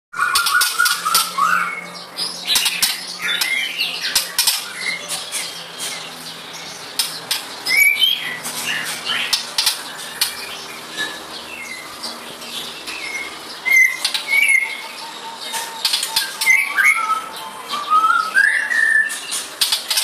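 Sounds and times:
bird chirps and whistles: 0.2 - 6.0, 7.6 - 11.9, 13.0 - 19.5.

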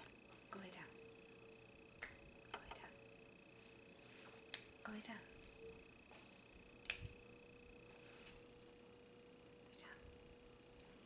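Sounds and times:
faint steady whine: 0.0 - 11.0.

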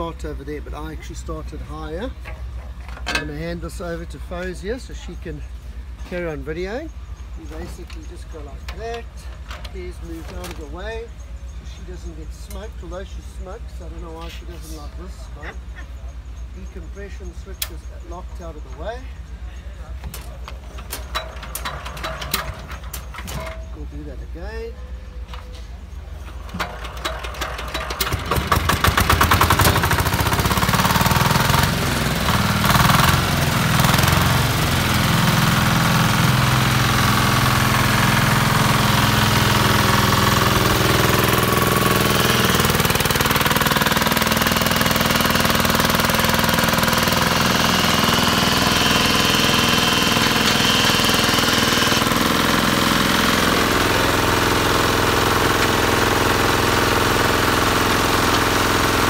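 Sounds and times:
diesel engine starting and running: 0.0 - 59.0.

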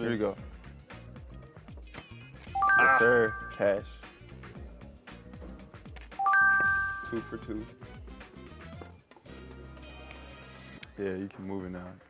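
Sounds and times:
quiet background music: 0.0 - 12.0
rising three-note chime: 2.6 - 3.8, 6.2 - 7.4.

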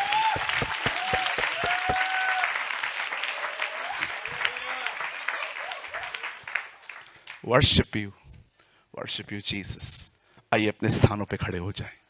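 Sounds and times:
crowd applauding: 0.0 - 7.5.

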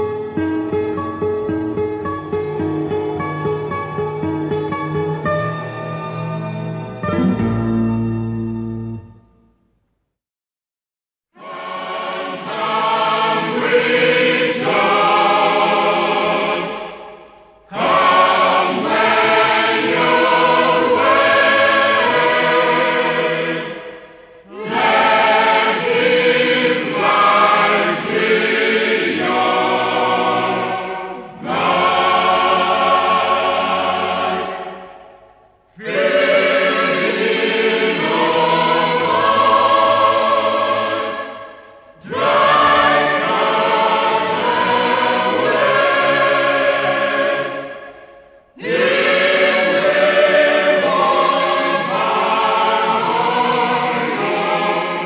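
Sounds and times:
mixed choir singing a hymn: 11.4 - 55.0.

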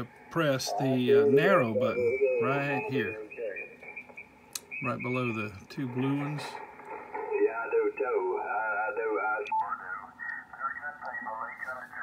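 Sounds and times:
radio voice through speaker: 0.4 - 3.8, 4.7 - 12.0
radio filter click: 2.1 - 5.1, 6.3 - 8.5, 9.4 - 12.0.

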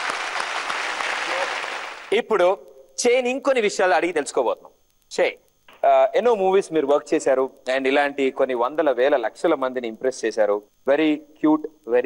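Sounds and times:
studio audience applauding: 0.0 - 2.2.

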